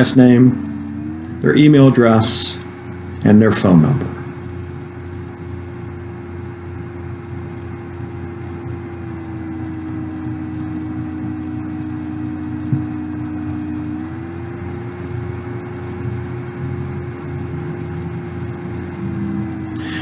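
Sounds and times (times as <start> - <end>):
low hum: 0.0 - 20.0
steady background drone: 0.0 - 20.0.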